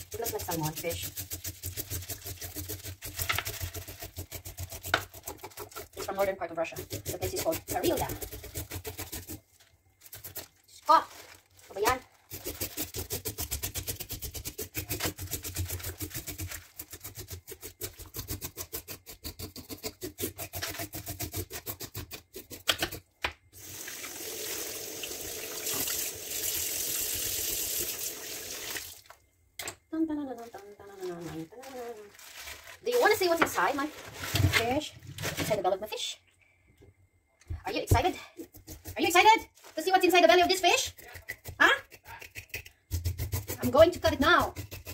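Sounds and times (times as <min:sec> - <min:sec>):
knife scraping fish scales: 0:00.0 - 0:10.6, 0:12.3 - 0:23.0, 0:38.4 - 0:39.2, 0:40.8 - 0:44.9
person speaking: 0:06.0 - 0:08.2, 0:30.0 - 0:32.2
tap water running: 0:23.6 - 0:29.2.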